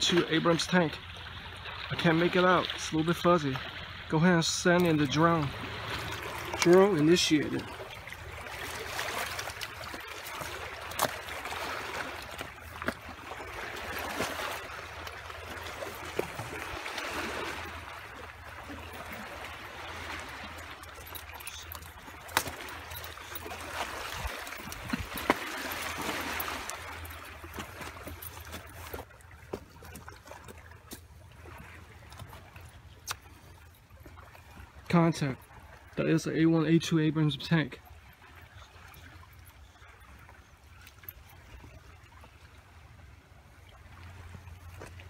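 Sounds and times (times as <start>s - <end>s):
water trickling among rocks: 0.0s - 42.9s.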